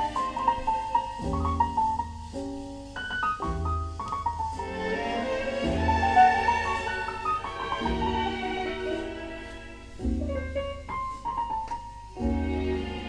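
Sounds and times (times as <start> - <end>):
classical piano music from a record: 0.0 - 13.0.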